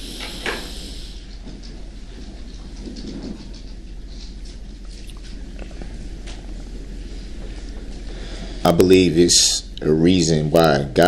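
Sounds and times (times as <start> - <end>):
brief hiss: 0.0 - 1.3
crackly room tone hum: 0.0 - 11.0.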